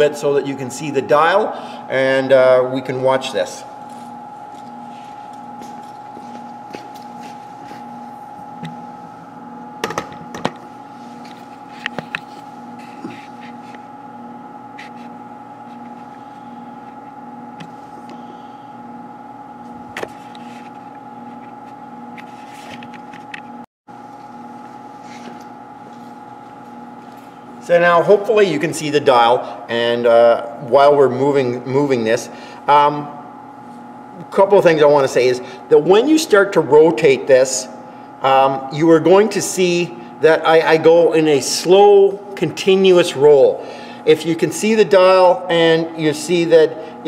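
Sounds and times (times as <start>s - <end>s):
workshop machinery hum: 0.0s - 47.0s.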